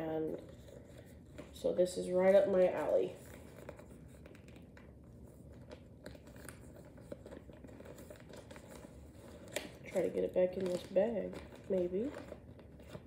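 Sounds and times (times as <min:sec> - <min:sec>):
low background hum: 0:00.0 - 0:13.0
paper and plastic rustling: 0:00.0 - 0:13.0.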